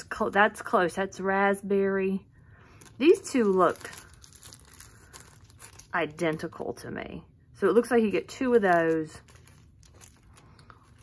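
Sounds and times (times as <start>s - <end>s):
plastic bags crinkling: 2.7s - 6.5s, 8.4s - 11.0s.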